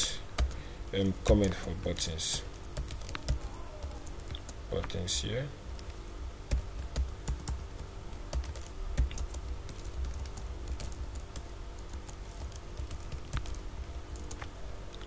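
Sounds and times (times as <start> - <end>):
low steady background hum: 0.0 - 15.0.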